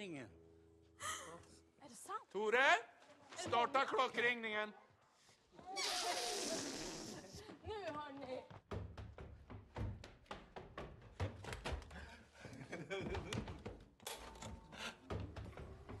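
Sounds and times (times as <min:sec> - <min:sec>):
footsteps on wooden stairs: 0:07.4 - 0:16.0.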